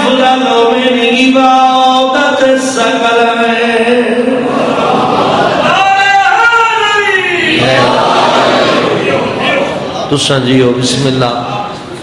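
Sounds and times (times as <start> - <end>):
voice chanting religious recitation: 0.0 - 8.2
many voices chanting: 7.2 - 9.4.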